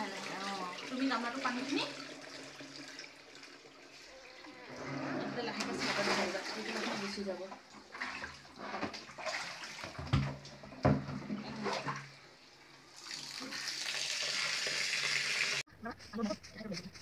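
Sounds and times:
water sloshing in plastic tubs: 0.0s - 12.2s
running water rushing: 0.0s - 15.6s.

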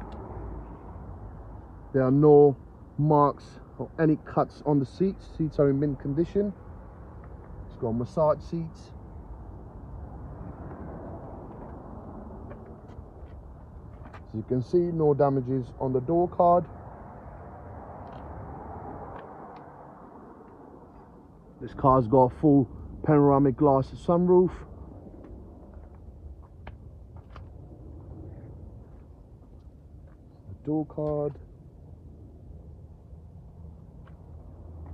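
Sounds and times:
low outdoor rumble: 0.0s - 34.9s.

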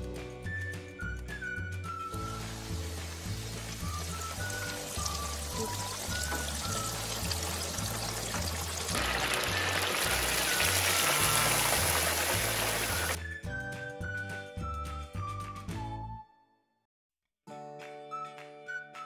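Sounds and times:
background music with bass line: 0.0s - 16.1s
food frying in deep fryer: 2.2s - 13.2s.

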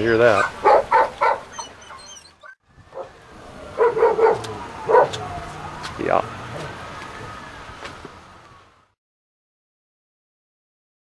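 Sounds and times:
dog barking: 0.4s - 2.3s, 2.9s - 5.4s.

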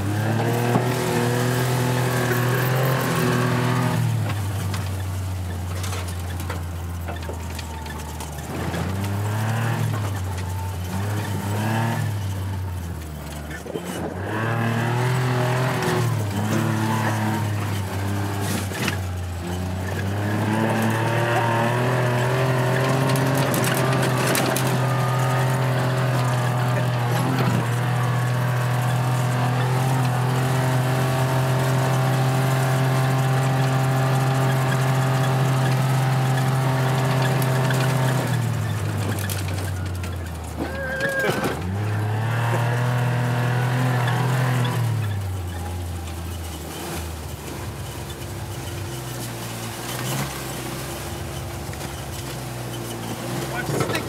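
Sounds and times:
utility vehicle engine running: 0.0s - 54.0s.

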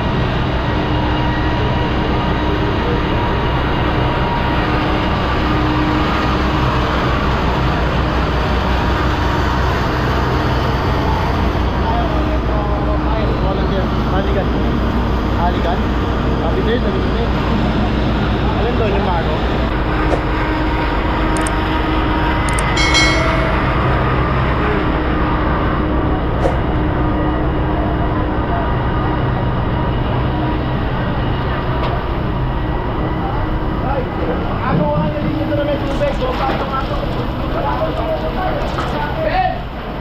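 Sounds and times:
fire engine pumps running: 0.0s - 40.0s
sharp clicks: 21.4s - 21.6s
brief high tone: 22.6s - 24.4s.

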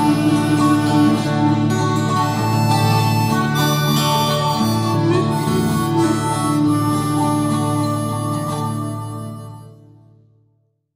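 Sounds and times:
harmonica melody: 0.0s - 10.0s
guitar chords: 0.0s - 10.4s.

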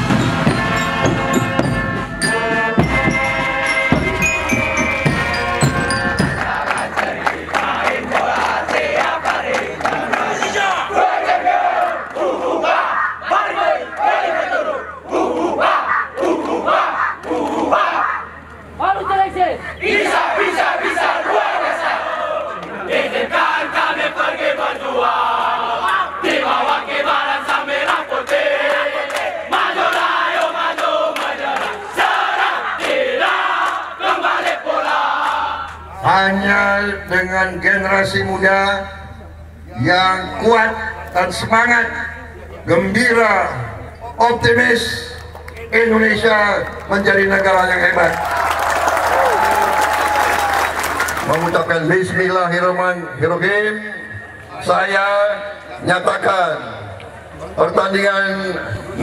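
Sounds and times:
audience applauding: 4.5s - 10.8s, 47.5s - 51.6s
group of young people shouting: 10.0s - 19.0s.

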